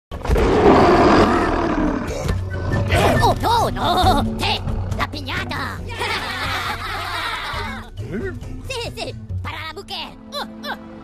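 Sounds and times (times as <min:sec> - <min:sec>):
cartoon character roaring: 0:00.6 - 0:02.1.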